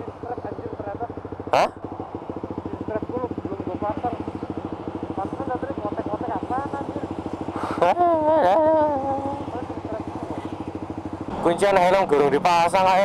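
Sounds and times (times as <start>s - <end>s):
small motorcycle engine idling: 0.0s - 13.0s.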